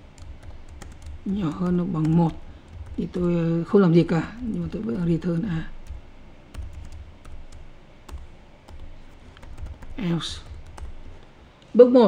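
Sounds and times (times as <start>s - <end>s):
typing on computer keyboard: 0.0s - 3.5s, 4.1s - 11.3s
low hum: 0.0s - 11.8s.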